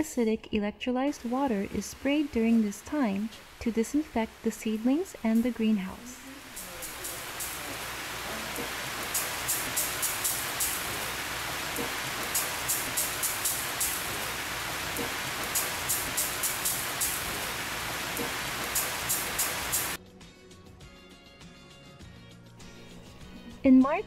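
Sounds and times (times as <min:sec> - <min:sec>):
hissing water spray: 0:01.1 - 0:05.6, 0:06.2 - 0:20.0.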